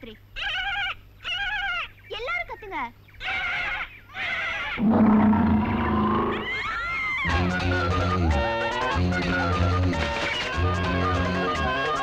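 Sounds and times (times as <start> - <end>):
high wavering vocal calls: 3.2 - 9.8
loud low animal roar: 4.8 - 6.8
rising scream: 4.8 - 7.2.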